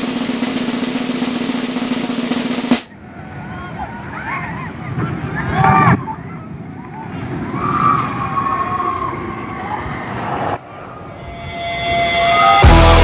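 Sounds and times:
roller coaster train rumble: 0:00.0 - 0:13.0
riders screaming: 0:02.9 - 0:13.0.

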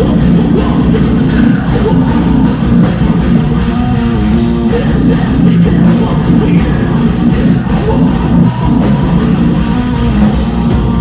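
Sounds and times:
distorted electric guitars: 0:00.0 - 0:11.0
drum kit: 0:00.0 - 0:11.0.

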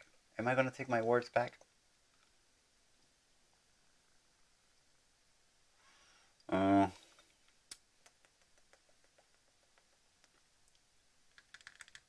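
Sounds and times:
computer keyboard typing: 0:11.3 - 0:12.0.

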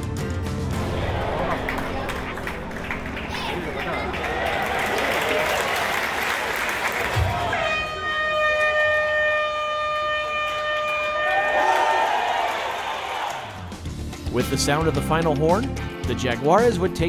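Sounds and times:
stadium crowd noise: 0:00.6 - 0:13.9
stadium horn held note: 0:07.2 - 0:12.2.

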